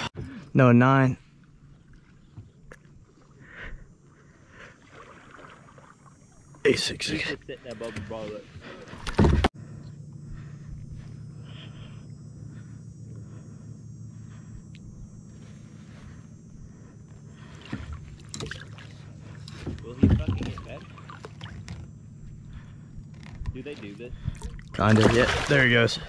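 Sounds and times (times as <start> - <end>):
water sloshing against kayak hull: 1.3 - 6.6, 15.3 - 26.0
fish splashing: 4.8 - 6.5, 17.5 - 19.4, 24.4 - 25.7.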